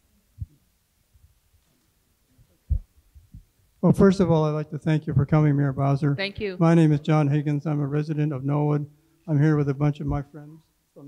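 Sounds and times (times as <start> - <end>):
short low thuds: 2.7 - 3.5
man speaking: 3.8 - 10.7.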